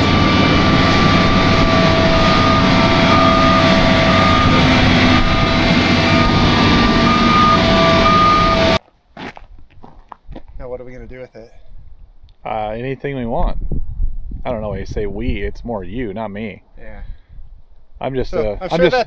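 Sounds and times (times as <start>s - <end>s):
excavator engine running: 0.0s - 8.8s
steady whine: 0.0s - 8.8s.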